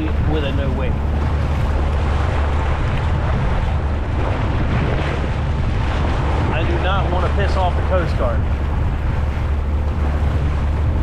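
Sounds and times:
jet ski engine droning: 0.0 - 11.0
water washing along hull: 0.0 - 11.0
wind buffeting microphone: 0.0 - 11.0.

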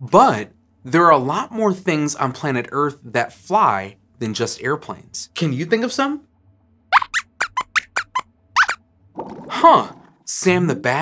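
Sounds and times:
high-pitched puppet squeaks: 7.0 - 8.8.

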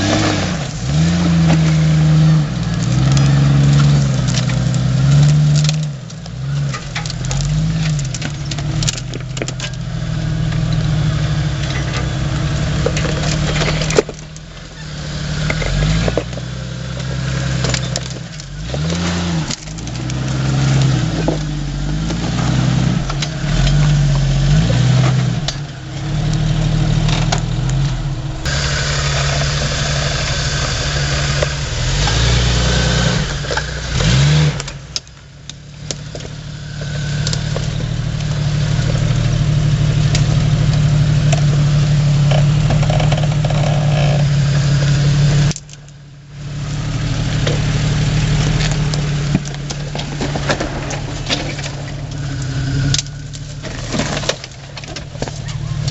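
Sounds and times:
engine revving: 0.0 - 55.9.

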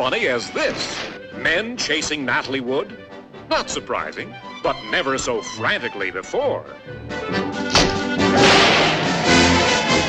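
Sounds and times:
orchestral music: 0.0 - 10.0
sudden crash: 7.7 - 10.0.

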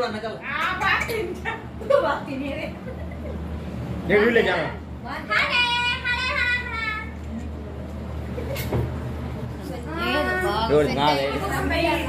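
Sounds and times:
indistinct voices in a room: 0.0 - 12.0
steady low hum: 0.0 - 12.0.

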